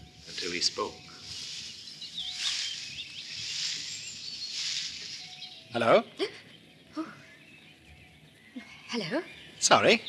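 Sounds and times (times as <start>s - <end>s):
rustling hiss: 0.0s - 6.8s
faint bird chirps: 0.0s - 10.0s.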